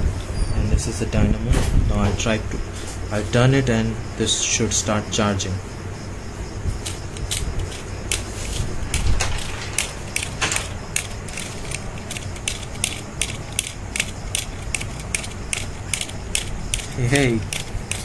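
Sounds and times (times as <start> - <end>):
dynamo clicking: 6.9 - 18.0.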